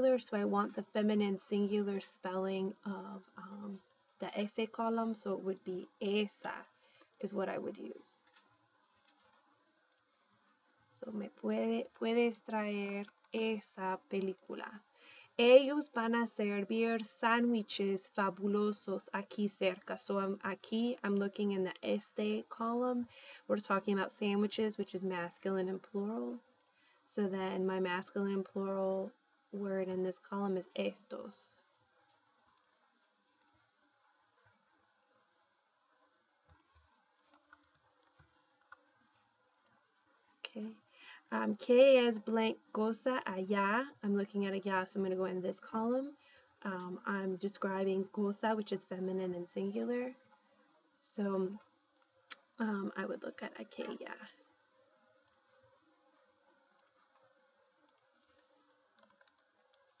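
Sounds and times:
small clicks: 6.6s - 10.2s, 32.1s - 33.7s, 36.5s - 40.1s, 55.2s - 55.5s, 56.8s - 60.0s
computer keyboard keystrokes: 36.5s - 38.8s, 59.0s - 60.0s.

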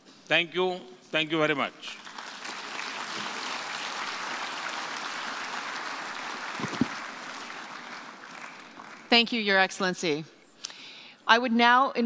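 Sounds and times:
audience applauding: 1.9s - 9.2s.

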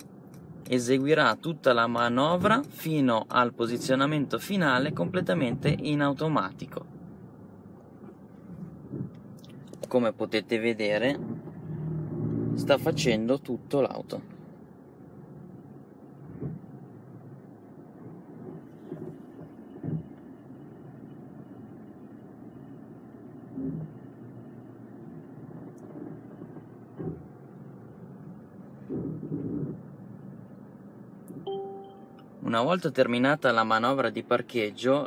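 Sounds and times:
car cabin hum: 0.0s - 35.0s
faint thin high tone: 31.4s - 32.3s.

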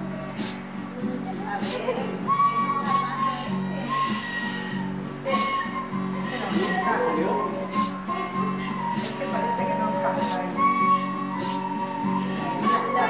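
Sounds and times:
flute melody: 0.0s - 13.0s.

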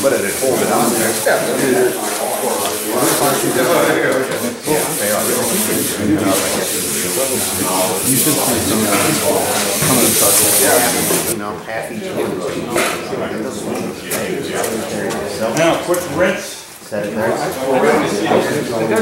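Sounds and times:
people talking: 0.0s - 19.0s
sandpaper rubbing hiss: 4.7s - 11.4s.

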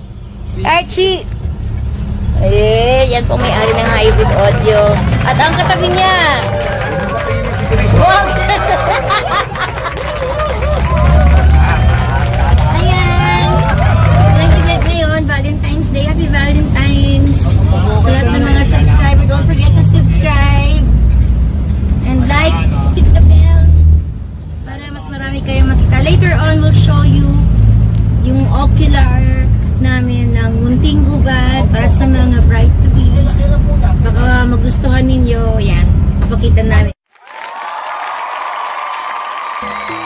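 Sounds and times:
van engine and road rumble: 0.0s - 37.0s
voices chatting: 2.3s - 20.9s.

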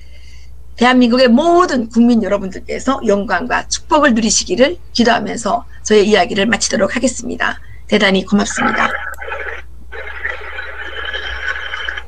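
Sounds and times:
compressed applause over video call: 9.1s - 12.0s.

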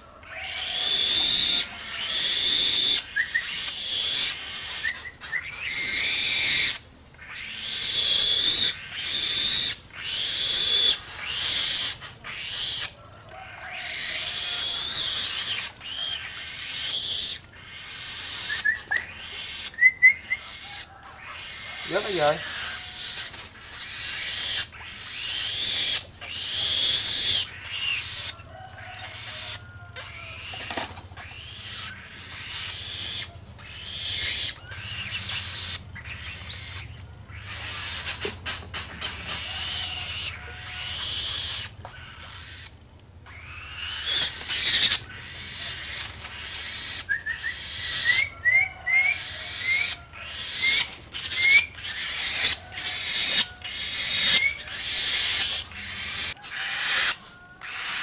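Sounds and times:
bird of prey rasping calls: 0.0s - 58.0s.

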